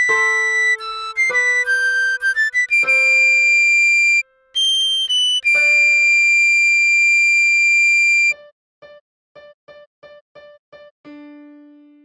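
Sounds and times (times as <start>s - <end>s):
recorder melody: 0.0s - 8.4s.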